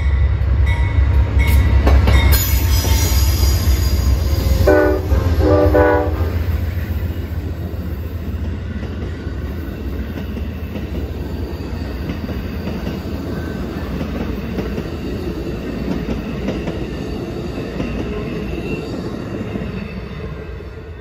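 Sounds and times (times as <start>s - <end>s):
train wheels rumbling on rail: 0.0s - 21.0s
rail clicks: 0.6s - 20.4s.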